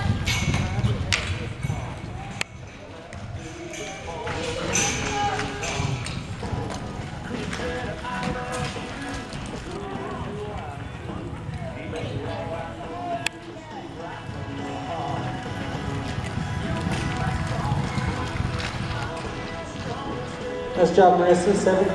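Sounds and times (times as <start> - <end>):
music: 0.0 - 21.9
voices talking: 0.8 - 21.9
horse galloping on soft dirt: 4.2 - 20.8.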